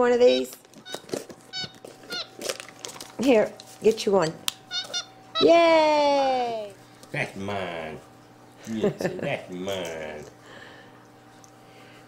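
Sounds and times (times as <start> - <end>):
monkey chirping: 4.7 - 5.5.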